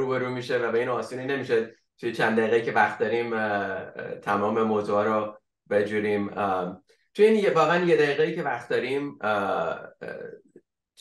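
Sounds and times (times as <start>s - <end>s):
man murmuring: 3.5s - 4.3s, 9.1s - 10.6s.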